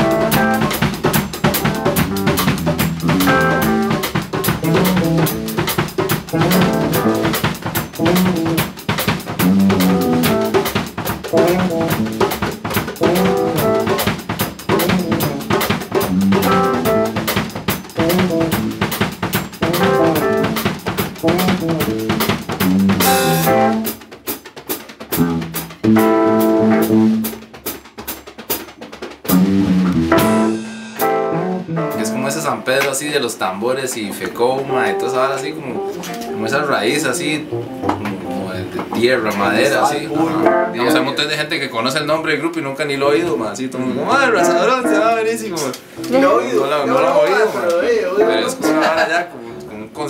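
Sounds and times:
held chords: 0:00.0 - 0:24.1, 0:25.1 - 0:27.4, 0:29.3 - 0:32.8, 0:34.4 - 0:41.5, 0:43.1 - 0:50.0
funk-rock band playing: 0:00.0 - 0:33.4, 0:34.2 - 0:50.0
drums and percussion: 0:00.0 - 0:49.2.

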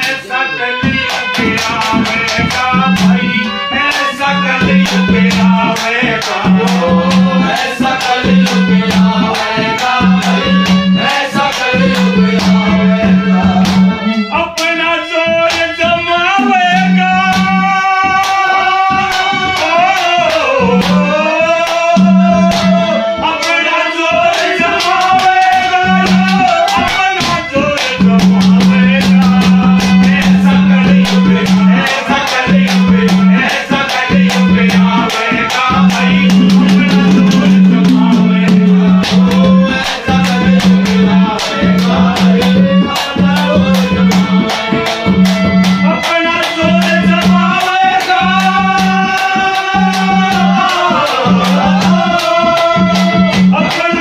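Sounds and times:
fast percussion beat: 0:00.0 - 0:54.0
folk instrumental accompaniment: 0:00.0 - 0:54.0
man singing long wavering notes: 0:01.8 - 0:54.0.

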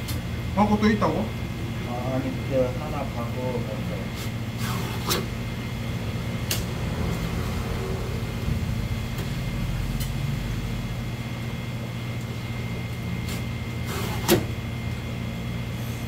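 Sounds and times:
machine hum with high whine: 0:00.0 - 0:16.0.

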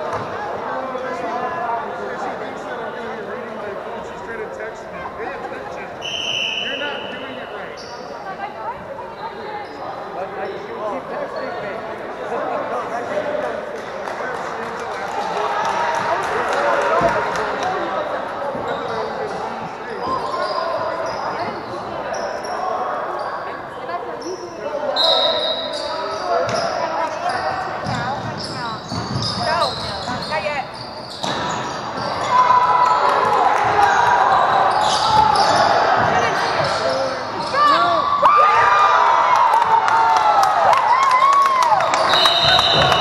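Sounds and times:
sneakers squeaking: 0:05.9 - 0:10.7, 0:18.0 - 0:38.7, 0:41.8 - 0:43.0.

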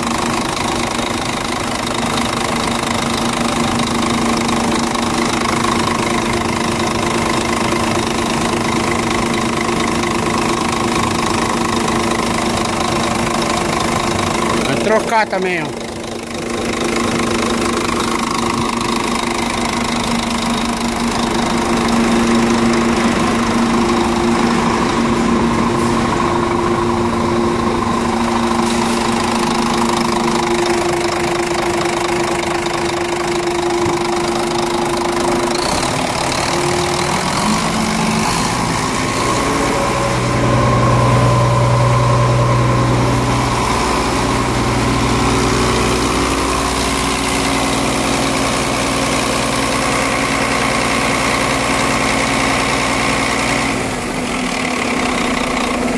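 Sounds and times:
diesel truck engine idling: 0:00.0 - 0:55.9
deep hum: 0:02.0 - 0:52.6.

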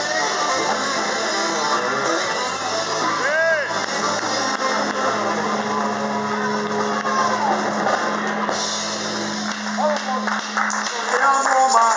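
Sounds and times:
live rock band playing: 0:00.0 - 0:10.8.

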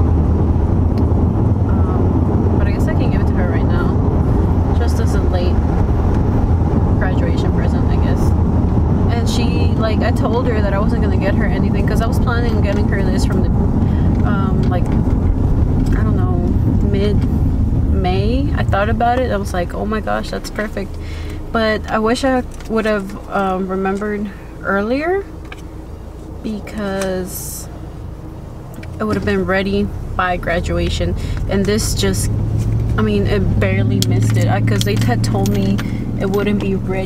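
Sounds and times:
car road and engine drone: 0:00.0 - 0:37.0
woman talking: 0:01.6 - 0:04.0, 0:04.7 - 0:05.6, 0:07.0 - 0:08.4, 0:09.1 - 0:15.1, 0:15.8 - 0:17.3, 0:17.9 - 0:25.4, 0:26.4 - 0:27.7, 0:29.0 - 0:32.3, 0:33.0 - 0:37.0.

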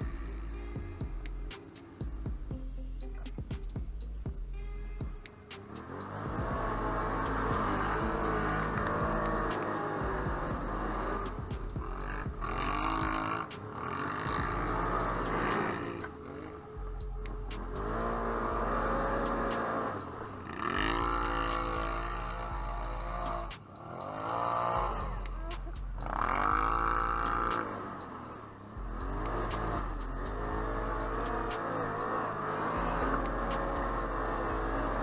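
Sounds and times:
atv engine revving: 0:00.0 - 0:35.0.

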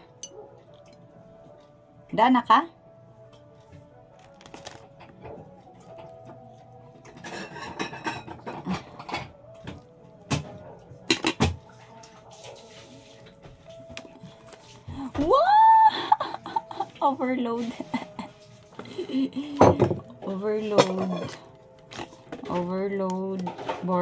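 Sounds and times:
faint background music: 0:00.0 - 0:24.0
spoon clinking on plates: 0:07.0 - 0:09.5.

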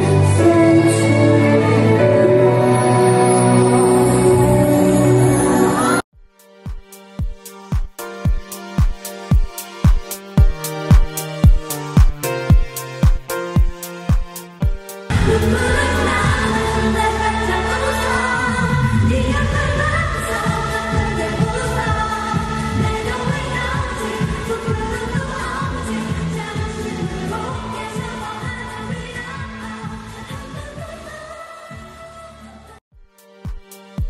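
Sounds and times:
pop song with singing: 0:00.0 - 0:06.0, 0:08.3 - 0:32.8.

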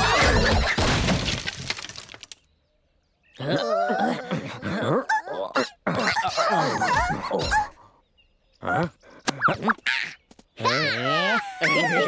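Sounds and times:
cartoon creatures high sliding voices: 0:09.5 - 0:12.0.

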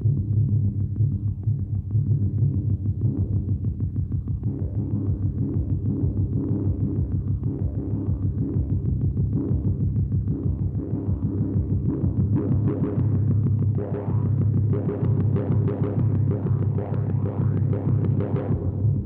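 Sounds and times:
tense throbbing soundtrack music: 0:00.0 - 0:19.0.

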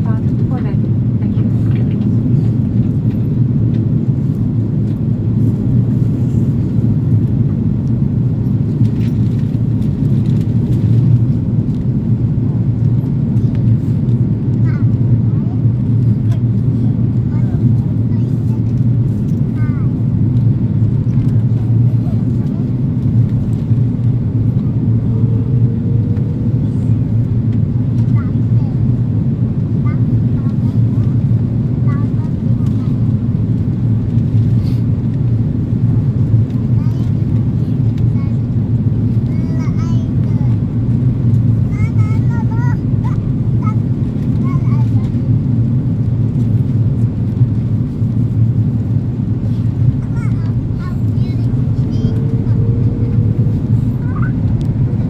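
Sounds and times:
airplane cabin noise: 0:00.0 - 0:55.0.

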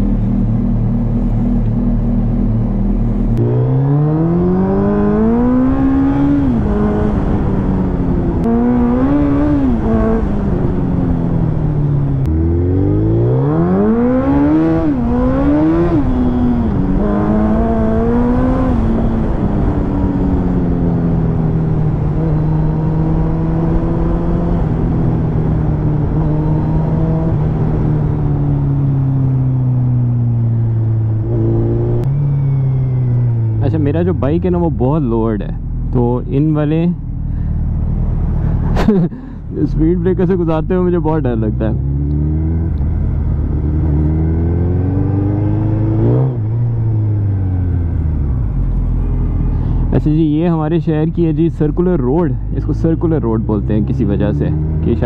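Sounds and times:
motorcycle engine: 0:00.0 - 0:55.0.

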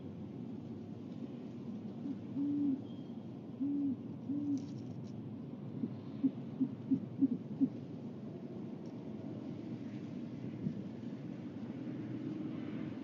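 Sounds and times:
owl hooting: 0:02.0 - 0:02.9, 0:03.6 - 0:04.6, 0:06.2 - 0:07.8.

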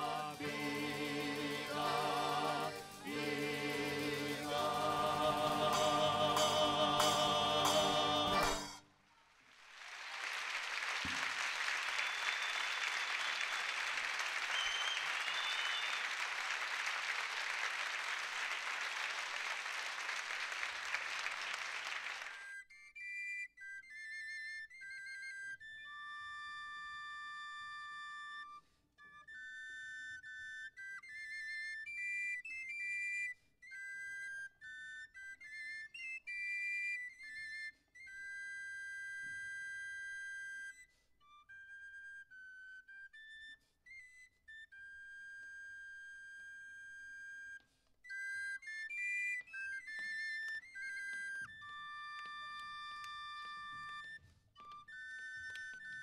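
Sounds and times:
audience applauding: 0:00.0 - 0:08.8, 0:09.4 - 0:22.6
wooden flutes playing melody: 0:00.0 - 0:09.3, 0:14.4 - 0:16.1, 0:22.2 - 0:56.0.

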